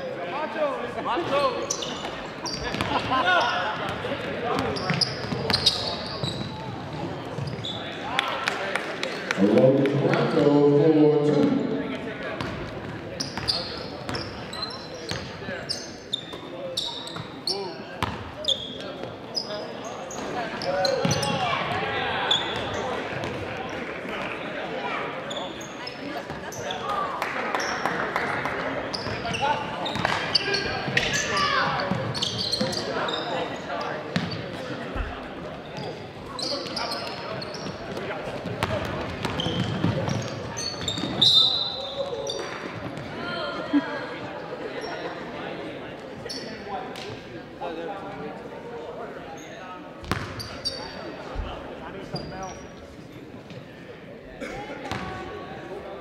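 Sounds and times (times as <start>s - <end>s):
sneaker squeaks: 1.3s - 8.0s, 13.2s - 23.4s, 25.2s - 27.0s, 28.9s - 34.7s, 35.6s - 43.1s, 46.2s - 46.6s, 49.4s - 51.1s, 52.0s - 52.8s.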